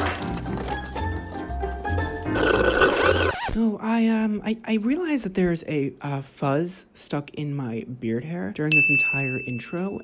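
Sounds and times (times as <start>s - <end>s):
loud rough burp: 2.3s - 3.4s
sipping from a straw: 2.4s - 3.6s.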